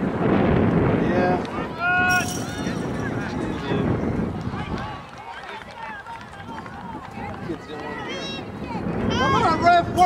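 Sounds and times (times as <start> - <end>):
overlapping voices calling out: 1.4 - 10.0.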